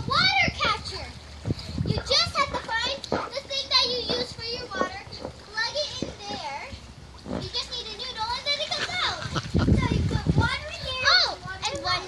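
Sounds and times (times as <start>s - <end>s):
young children crying and calling: 7.5s - 12.0s.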